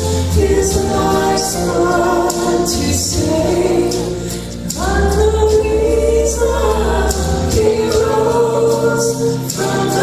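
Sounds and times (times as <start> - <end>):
deep bass: 0.0 - 10.0
woman singing gospel song: 0.0 - 10.0.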